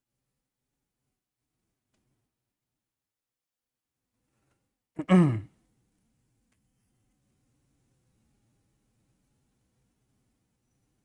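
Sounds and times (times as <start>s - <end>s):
man sighing: 5.0s - 5.5s.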